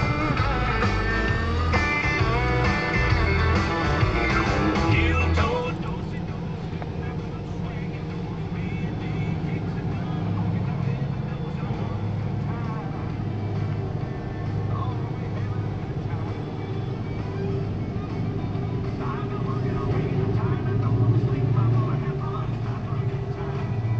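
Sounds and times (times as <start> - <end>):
diesel locomotive rumble: 0.0 - 23.9.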